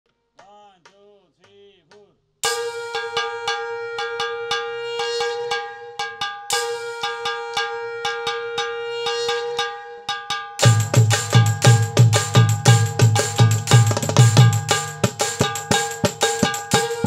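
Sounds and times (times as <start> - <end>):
brass gong struck rapidly: 2.4 - 9.6.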